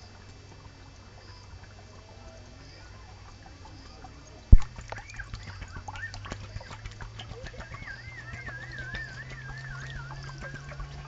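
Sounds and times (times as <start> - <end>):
low steady hum: 0.0 - 11.0
water bubbling into jerrycan: 3.1 - 11.0
wavering high call: 7.3 - 11.0.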